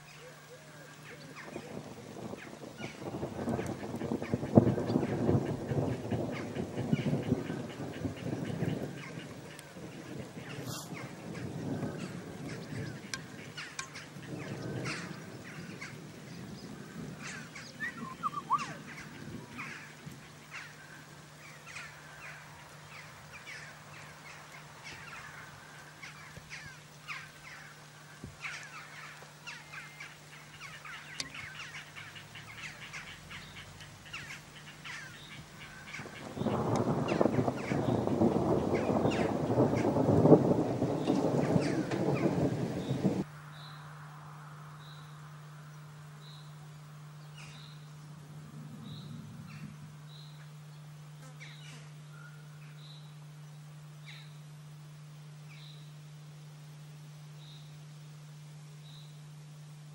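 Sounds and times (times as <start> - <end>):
birds chirping: 0.0 - 44.0, 44.6 - 54.7.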